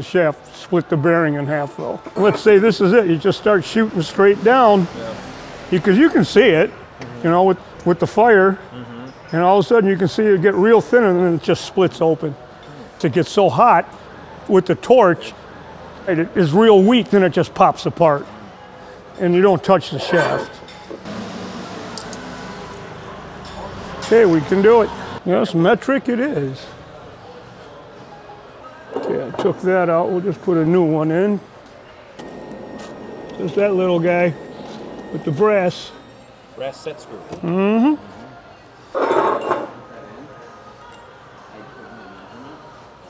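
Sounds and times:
workshop background noise: 0:00.0 - 0:43.0.

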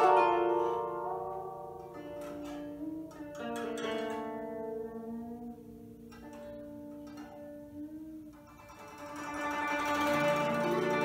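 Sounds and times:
guzheng plucked notes: 0:00.0 - 0:11.0.

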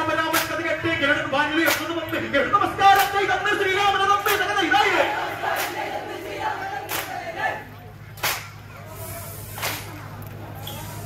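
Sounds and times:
men's voices calling out: 0:00.0 - 0:09.6
group hand claps: 0:00.3 - 0:00.6, 0:01.6 - 0:02.0, 0:03.0 - 0:03.2, 0:04.2 - 0:04.5, 0:05.2 - 0:07.4, 0:08.2 - 0:08.6, 0:09.5 - 0:10.0.

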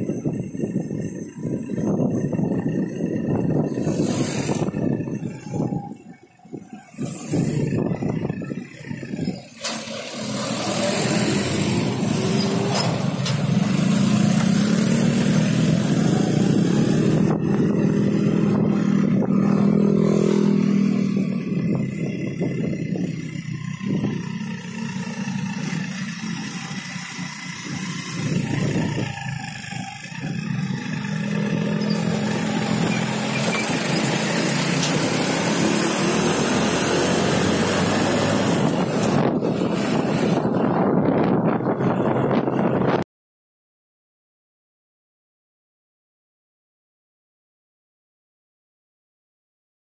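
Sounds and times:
road and wind noise: 0:00.0 - 0:43.1
motorcycle engine running: 0:10.8 - 0:43.0.

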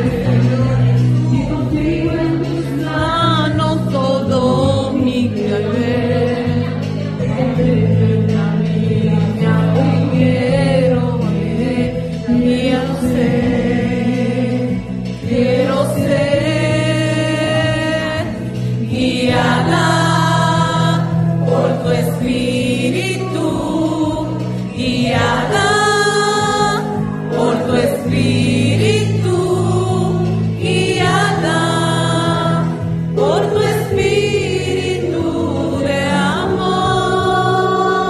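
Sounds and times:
voices singing slow song: 0:00.0 - 0:38.0.

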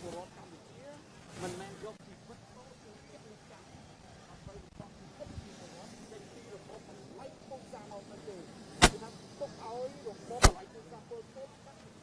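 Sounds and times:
faint murmur of people talking: 0:00.0 - 0:12.0
sharp loud crack: 0:08.8 - 0:09.0, 0:10.4 - 0:10.6.

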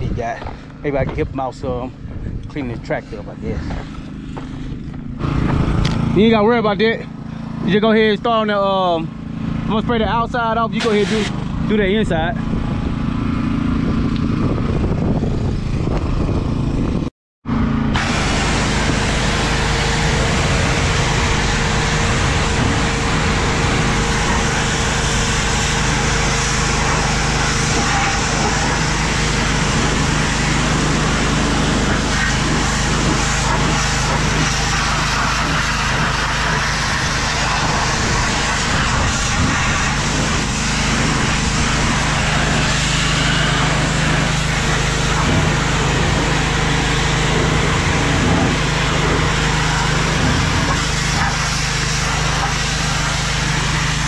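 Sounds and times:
pressure washer motor hum: 0:00.1 - 0:54.0
water jet hissing on metal: 0:10.8 - 0:11.4, 0:18.0 - 0:54.0.

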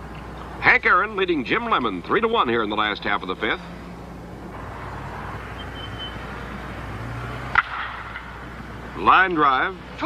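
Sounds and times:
steady background hiss: 0:00.0 - 0:10.0
bat hitting baseball: 0:07.5 - 0:08.4.

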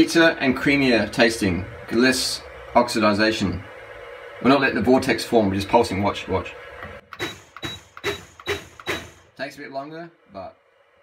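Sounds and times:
blender blades chopping bananas: 0:06.8 - 0:09.3.

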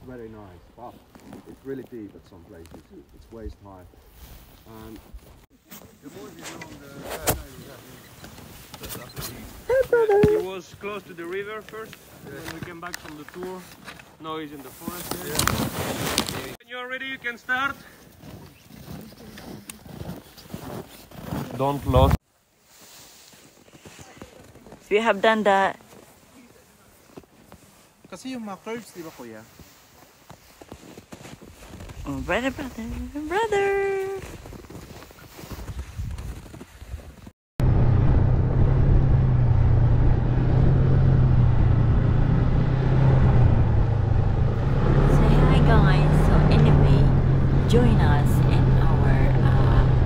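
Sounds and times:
faint background noise: 0:00.0 - 0:35.8
faint outdoor background: 0:00.0 - 0:36.1.

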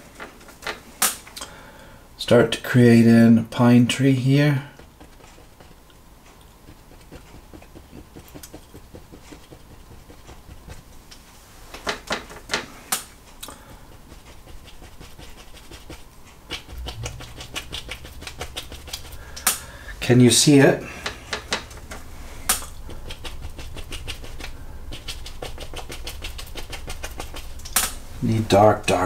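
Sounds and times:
low steady hum: 0:00.0 - 0:29.0
brush tapping on canvas: 0:06.7 - 0:10.9, 0:13.8 - 0:19.8.

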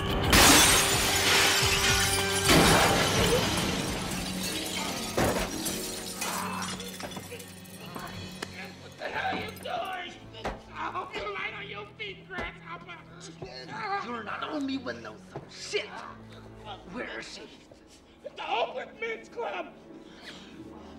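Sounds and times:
film score music: 0:00.0 - 0:20.9
glass window shattering: 0:00.2 - 0:08.1.

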